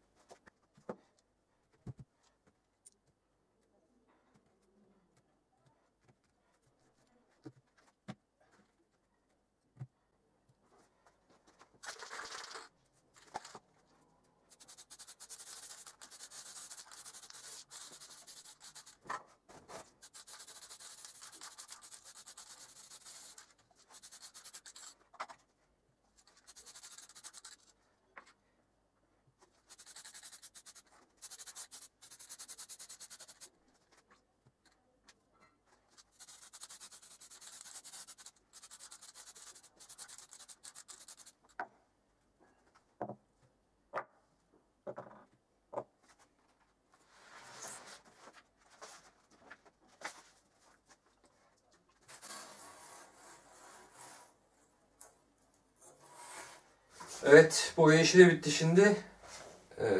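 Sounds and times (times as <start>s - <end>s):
spray can hissing: 14.5s - 19.0s, 20.0s - 24.9s, 26.5s - 27.6s, 29.7s - 33.5s, 36.1s - 41.4s.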